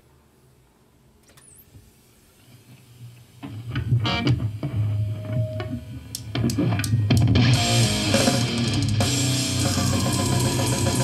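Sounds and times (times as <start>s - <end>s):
heavy metal music with electric guitar: 4.0s - 11.0s.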